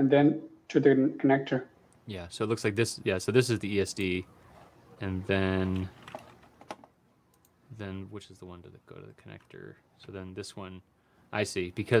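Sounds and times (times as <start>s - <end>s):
man talking: 0.8s - 4.3s, 5.0s - 6.0s, 7.7s - 12.0s.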